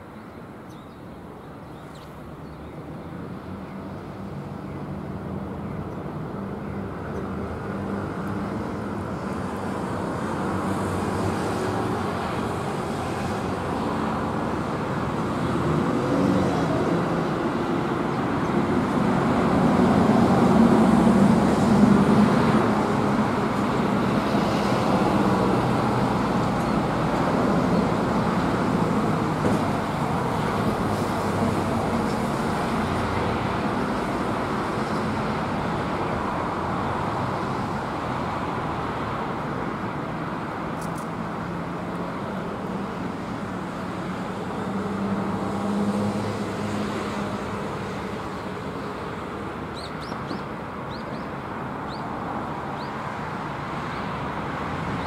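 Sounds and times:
road traffic noise: 0.0 - 55.0.

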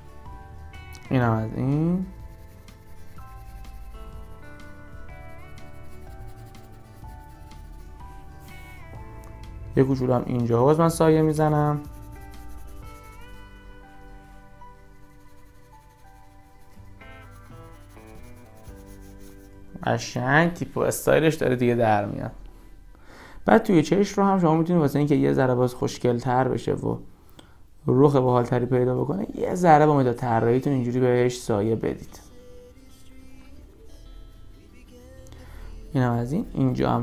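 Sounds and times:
background music of held notes: 0.0 - 25.1, 28.4 - 37.0
pencil scratching on paper: 2.1 - 4.7, 5.5 - 8.8, 11.1 - 13.6, 14.8 - 19.7
man's voice: 9.6 - 11.9, 27.9 - 33.7, 34.6 - 37.0.

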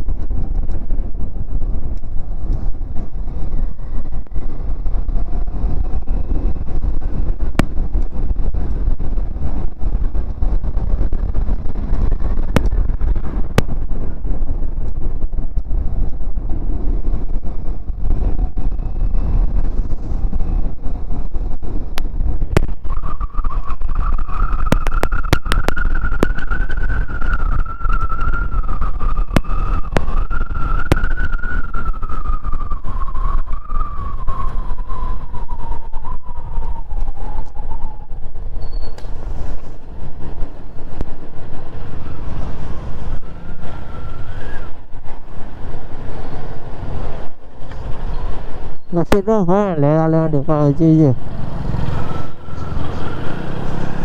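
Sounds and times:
motorcycle whine: 0.0 - 54.0
wind buffeting microphone: 0.0 - 54.0.

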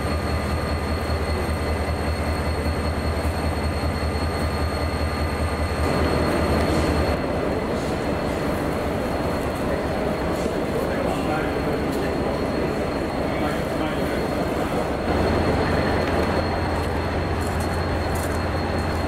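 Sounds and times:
locomotive engine idling hum: 0.0 - 19.0.

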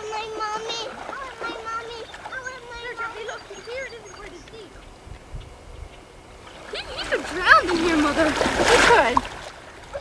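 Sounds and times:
water splashing from wading: 0.0 - 4.7, 6.2 - 10.0
children calling and shouting: 0.0 - 5.0, 6.6 - 9.1.

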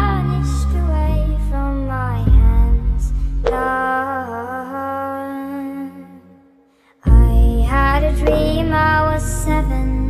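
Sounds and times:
soft backing music: 7.1 - 10.0.

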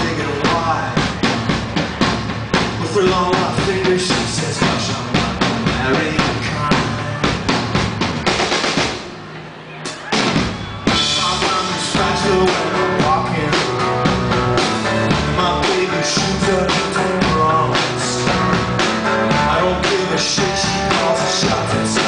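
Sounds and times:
drum kit beats: 0.0 - 22.0
live rock band playing: 0.0 - 22.0.

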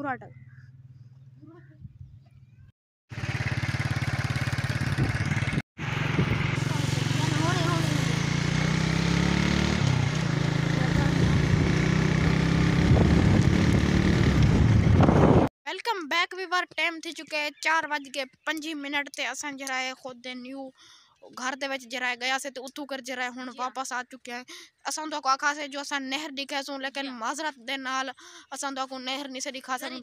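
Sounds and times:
motorcycle engine running: 0.5 - 15.5
loud rushing noise: 5.0 - 10.0.

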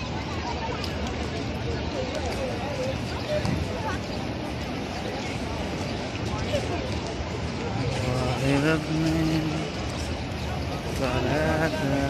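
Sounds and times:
crowd murmur and street noise: 0.0 - 12.0.

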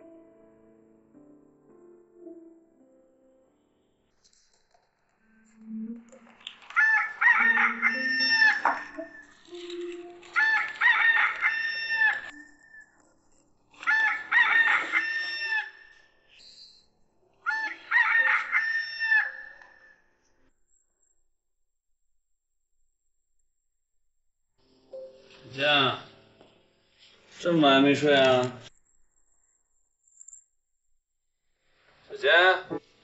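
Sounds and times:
rooster crowing: 6.8 - 9.3, 10.4 - 12.8, 13.8 - 15.9, 17.5 - 19.9.

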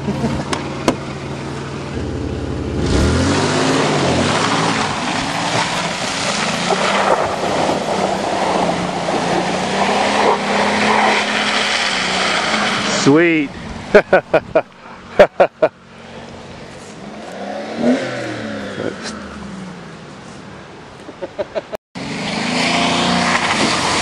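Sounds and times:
engine revving: 1.9 - 19.8, 22.0 - 24.0
tyres spinning in mud: 3.4 - 13.0.

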